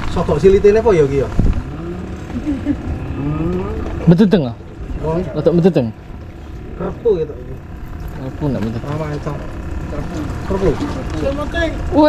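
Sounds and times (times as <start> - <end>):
indistinct talking: 0.0 - 12.0
steady low rumble: 0.0 - 12.0.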